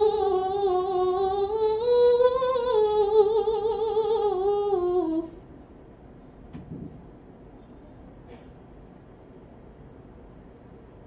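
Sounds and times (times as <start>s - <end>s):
girl reciting melodically: 0.0s - 5.4s.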